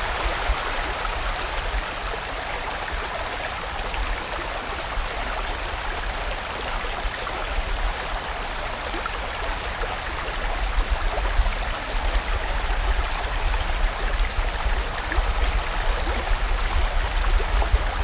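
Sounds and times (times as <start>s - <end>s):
stream rushing over rocks: 0.0s - 18.0s.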